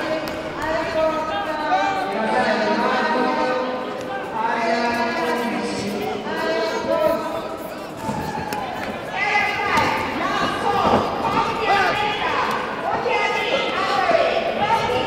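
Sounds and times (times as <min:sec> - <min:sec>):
people shouting in echoing hall: 0:08.0 - 0:15.0.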